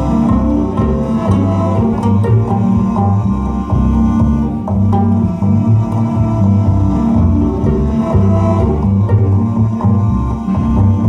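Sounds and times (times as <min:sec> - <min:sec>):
cello: 0:00.0 - 0:11.0
upright bass: 0:00.0 - 0:11.0.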